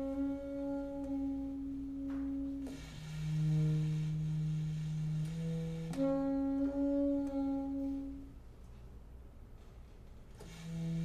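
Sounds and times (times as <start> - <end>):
cello: 0.0 - 8.4, 10.3 - 11.0
alto saxophone: 0.0 - 8.6, 9.8 - 11.0.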